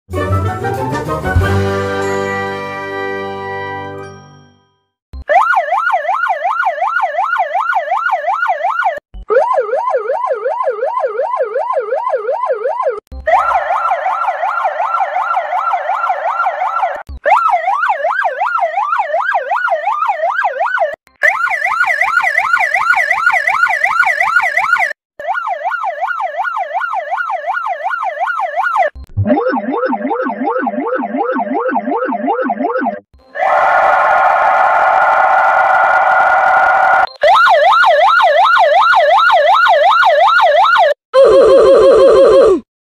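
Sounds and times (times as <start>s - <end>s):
motorcycle siren yelping: 5.2s - 42.6s.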